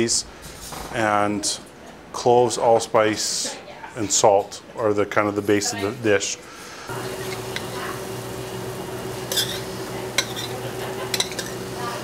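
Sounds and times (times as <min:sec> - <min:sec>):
metal spoon clinking in a pan: 0:09.3 - 0:11.7.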